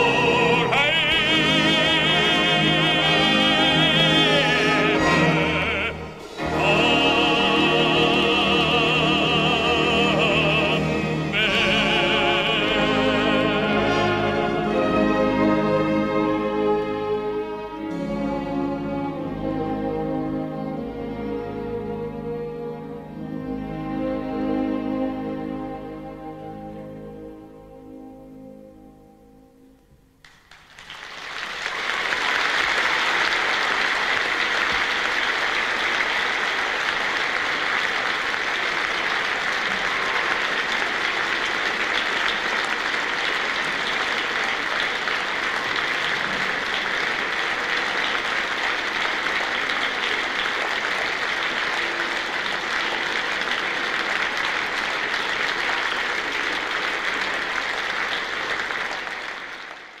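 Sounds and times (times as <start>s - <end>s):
audience applauding: 0.0s - 16.4s, 30.2s - 60.0s.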